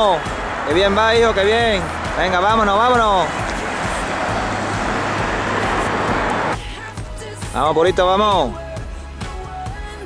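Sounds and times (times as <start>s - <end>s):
vehicle passing on highway: 0.0s - 6.6s.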